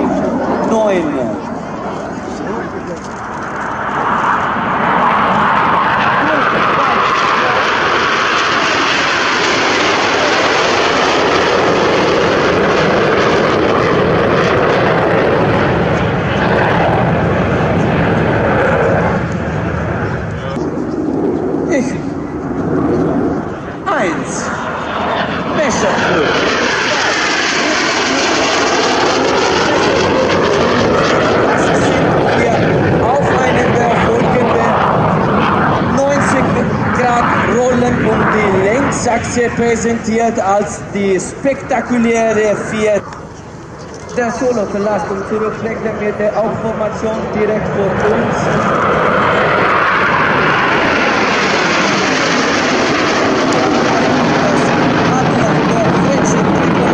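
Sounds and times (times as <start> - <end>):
jet aircraft flying past: 0.0 - 56.9.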